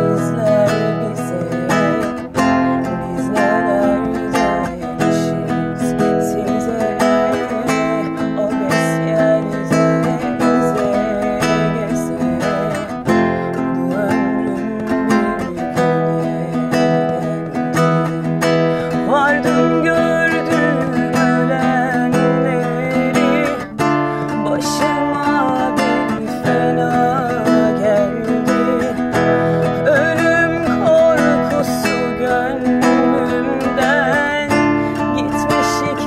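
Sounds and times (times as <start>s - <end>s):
strummed acoustic guitar: 0.0s - 36.0s
woman singing: 0.0s - 36.0s.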